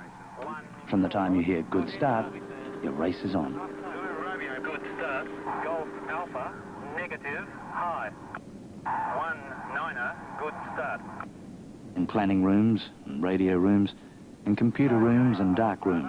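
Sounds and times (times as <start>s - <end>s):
voices over two-way radio: 0.0s - 11.3s, 12.0s - 16.0s
steady low hum: 0.0s - 16.0s.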